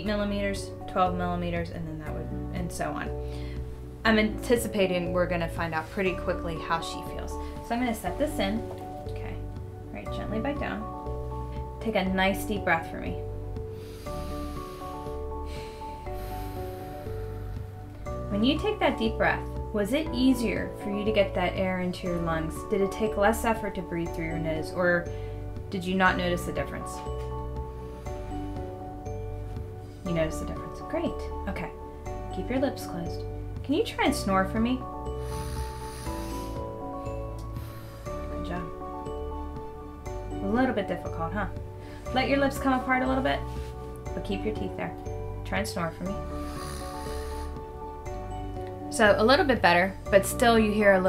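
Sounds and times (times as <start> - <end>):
soft background music: 0.0 - 51.0
breath drawn in through nose: 13.8 - 17.9, 35.2 - 36.8, 37.5 - 38.2, 46.4 - 47.6.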